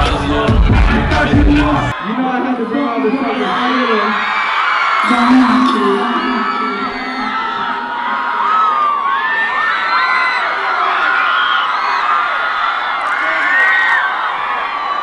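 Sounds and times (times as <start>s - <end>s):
concert crowd screaming and cheering: 0.0s - 15.0s.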